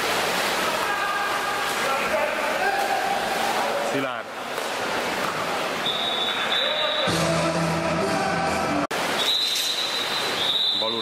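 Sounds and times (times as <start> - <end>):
water wash: 0.0 - 7.1, 8.9 - 11.0
crowd noise: 0.0 - 11.0.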